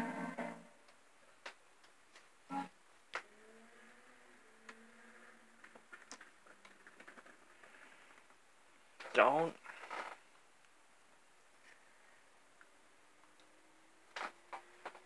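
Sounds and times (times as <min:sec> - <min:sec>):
sung cartoon soundtrack: 0:02.5 - 0:05.4
small clicks and ticks: 0:05.6 - 0:08.4.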